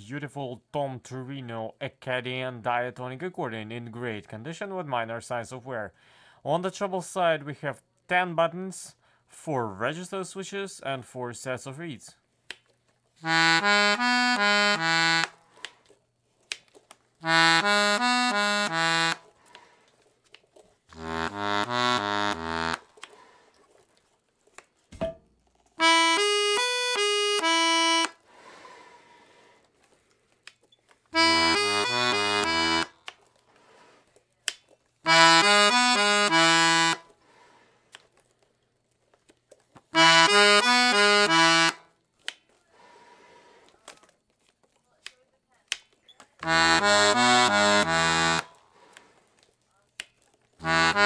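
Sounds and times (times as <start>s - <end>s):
button accordion phrases: 13.2s - 15.4s, 17.2s - 19.3s, 20.9s - 22.9s, 25.8s - 28.2s, 31.2s - 33.0s, 35.0s - 37.1s, 40.0s - 41.9s, 46.4s - 48.6s, 50.6s - 51.0s.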